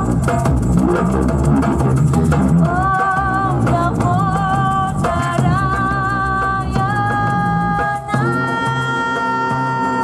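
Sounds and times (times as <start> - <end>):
shaker: 0.0 - 9.8
darbuka drumming: 0.0 - 10.0.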